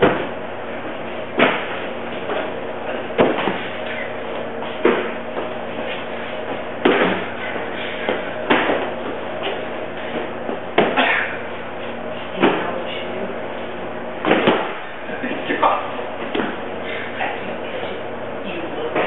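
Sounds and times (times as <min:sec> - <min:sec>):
steady electrical hum: 0:00.0 - 0:19.0
sharp knocks and thumps: 0:01.4 - 0:02.5, 0:03.2 - 0:03.7, 0:06.8 - 0:07.3, 0:10.7 - 0:11.1.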